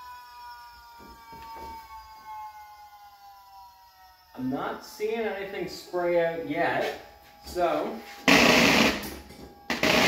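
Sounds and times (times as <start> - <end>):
power steering pump whine: 0.0 - 10.0.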